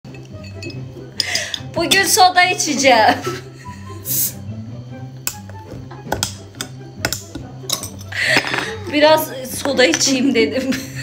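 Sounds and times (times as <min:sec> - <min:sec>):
background music: 0:00.0 - 0:11.0
bottle opener clicking on cap: 0:05.2 - 0:05.5, 0:06.1 - 0:08.6.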